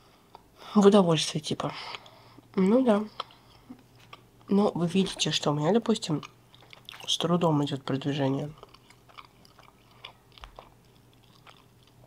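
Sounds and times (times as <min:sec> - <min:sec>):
person chewing pastry: 0:01.8 - 0:12.0.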